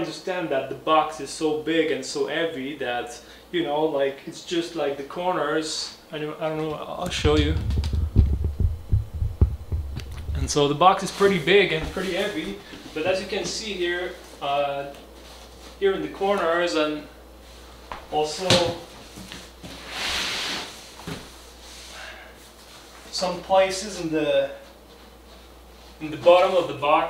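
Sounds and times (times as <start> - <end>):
footsteps on wooden floor: 7.1 - 10.6
soft thump: 7.2 - 10.4.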